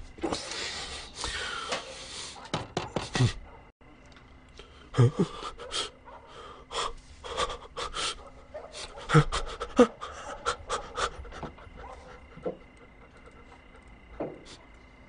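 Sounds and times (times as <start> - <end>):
man breathing heavily: 0.2 - 3.7, 4.6 - 14.7.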